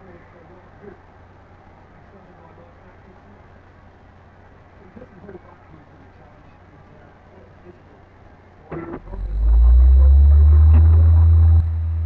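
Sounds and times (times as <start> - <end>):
loud steady low hum: 8.0 - 12.0.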